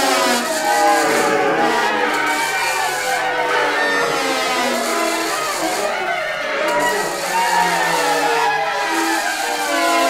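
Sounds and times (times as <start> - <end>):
wind ensemble holding notes: 0.0 - 10.0.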